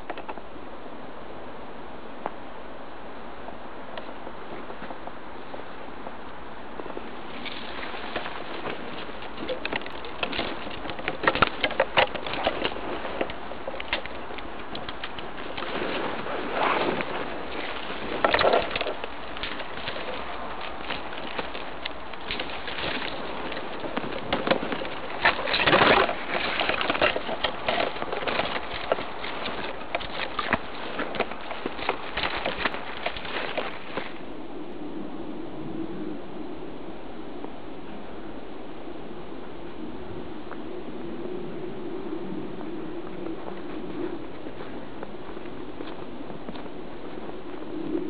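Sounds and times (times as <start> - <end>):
rustling and crackling handling: 6.8 - 34.3, 42.9 - 48.0.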